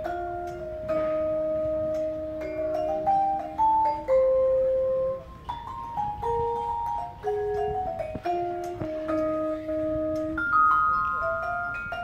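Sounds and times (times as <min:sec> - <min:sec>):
vibraphone chords ringing: 0:00.0 - 0:12.0.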